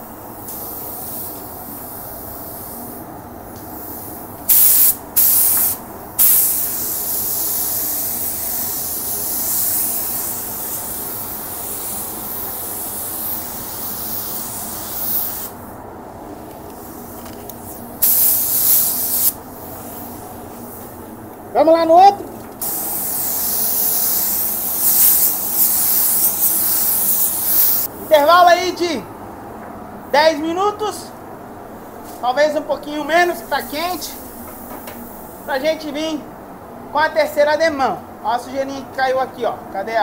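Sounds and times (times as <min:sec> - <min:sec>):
paint spray gun hissing: 0:00.0 - 0:03.0, 0:03.6 - 0:15.7, 0:16.8 - 0:20.9, 0:22.6 - 0:28.2
steady background hum: 0:00.0 - 0:40.0.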